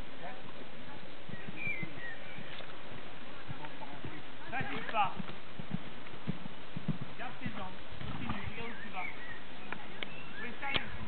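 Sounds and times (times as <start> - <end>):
horse hoofbeats on sand: 1.2 - 9.1
people talking: 2.8 - 5.2, 7.2 - 11.0.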